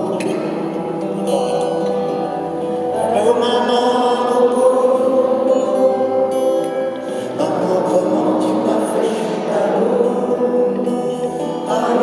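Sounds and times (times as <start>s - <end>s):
voices singing long notes: 0.0s - 12.0s.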